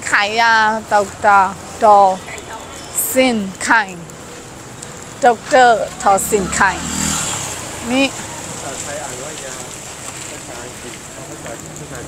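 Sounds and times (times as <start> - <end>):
street noise: 0.0 - 12.0
vehicle passing close: 4.1 - 10.5.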